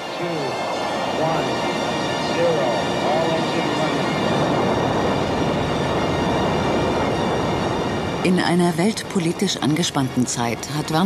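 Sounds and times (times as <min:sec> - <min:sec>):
rocket engines rumbling: 0:00.0 - 0:11.0.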